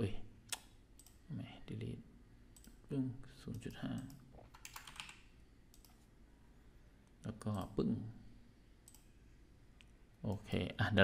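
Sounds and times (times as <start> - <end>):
computer keyboard keystrokes: 4.0 - 5.2.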